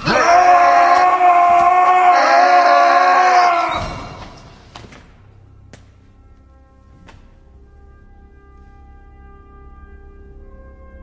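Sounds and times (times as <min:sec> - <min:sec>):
person screaming: 0:00.0 - 0:04.2.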